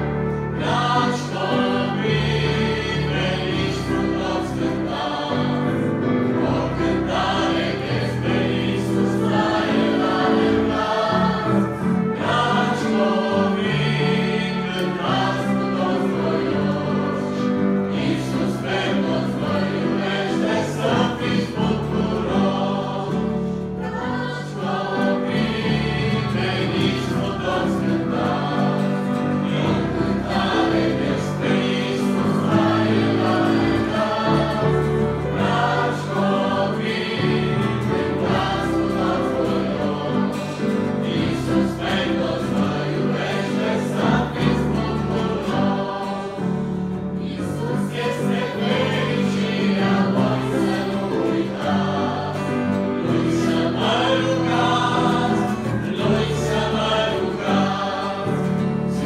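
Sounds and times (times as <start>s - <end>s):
church choir singing hymn: 0.0s - 59.0s.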